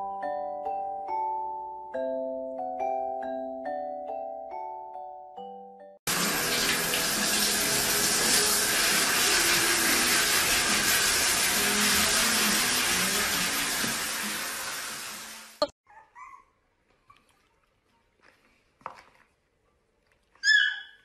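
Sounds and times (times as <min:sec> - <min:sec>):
shower spray running: 0:06.1 - 0:15.8.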